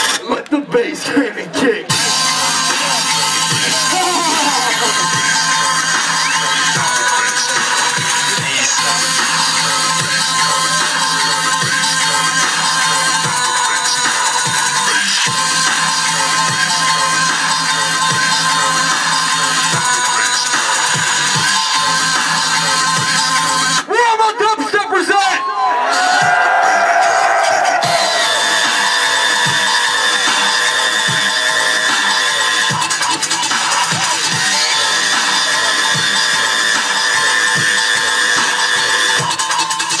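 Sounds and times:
electronic dance music: 0.0 - 40.0.

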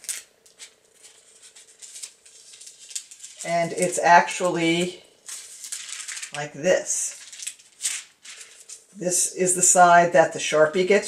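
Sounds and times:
paper rustling and crinkling: 0.0 - 4.1, 5.2 - 9.0.

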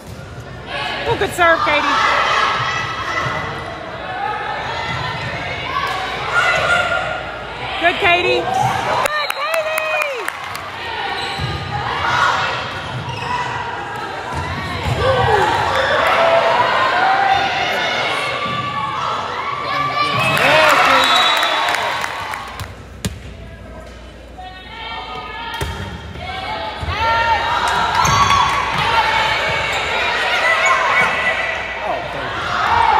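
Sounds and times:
crowd chatter: 0.0 - 32.9.

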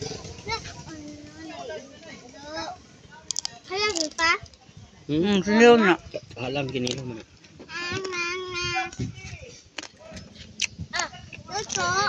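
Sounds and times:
people and children talking: 0.0 - 12.0
drawn-out child's voice: 7.7 - 9.0, 11.0 - 12.0.

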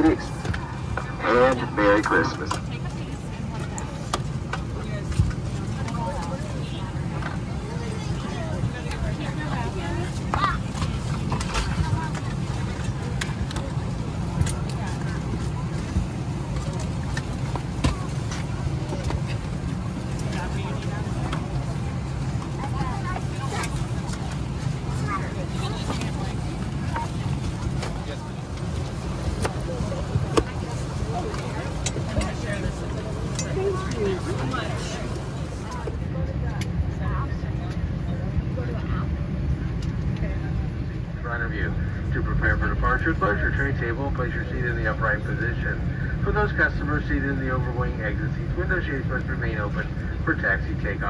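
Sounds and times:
airplane cabin hum: 0.0 - 51.0
passengers talking indistinctly: 0.0 - 51.0.

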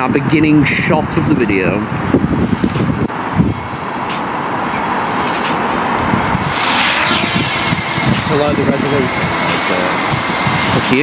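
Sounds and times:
wind rumbling on microphone: 0.0 - 11.0
drone propellers hissing and whining: 5.0 - 11.0.

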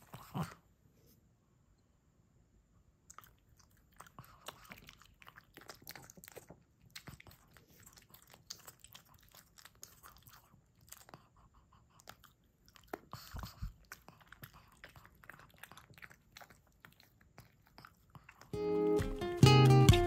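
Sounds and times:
dog chewing clicks and smacks: 3.1 - 19.3.

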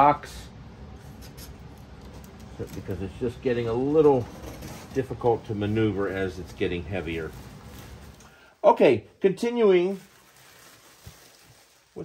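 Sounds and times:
plastic wrap handling: 1.2 - 8.4, 9.6 - 12.0.

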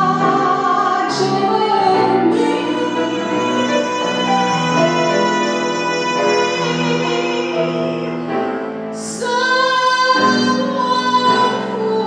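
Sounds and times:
woman singing with vibrato: 0.0 - 8.4, 9.0 - 12.0
piano accompaniment: 0.0 - 12.0.

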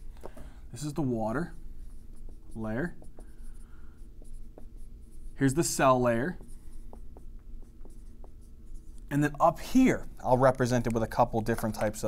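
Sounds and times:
marker scratching on whiteboard: 0.8 - 12.0.

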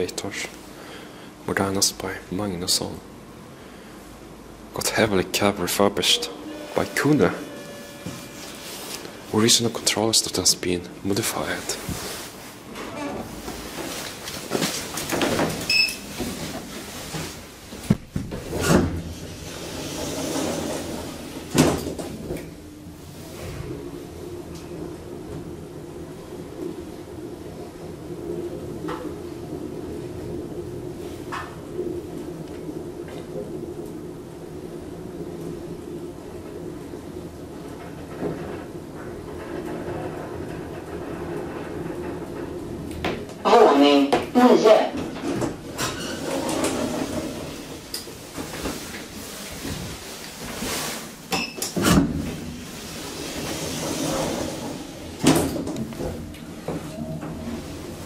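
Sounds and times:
elevator hum: 0.0 - 58.0
elevator clunks and knocks: 17.8 - 22.6.

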